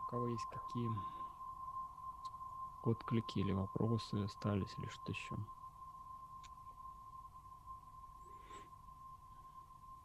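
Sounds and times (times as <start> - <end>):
man speaking: 0.0 - 1.1, 2.9 - 5.5
high-pitched electronic whine: 0.0 - 10.0.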